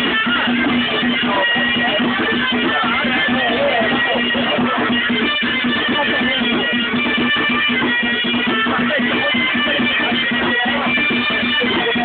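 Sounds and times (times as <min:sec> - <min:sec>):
plucked string instruments: 0:00.0 - 0:12.0.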